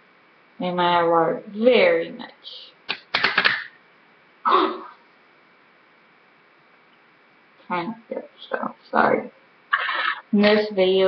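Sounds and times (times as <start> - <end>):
faint room hiss: 0.0 - 11.0
woman clearing her throat: 4.5 - 5.0.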